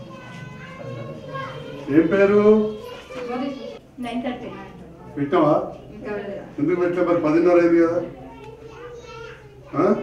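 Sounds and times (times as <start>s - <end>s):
small children's voices: 0.0s - 5.8s, 7.7s - 10.0s
adults talking: 0.0s - 10.0s.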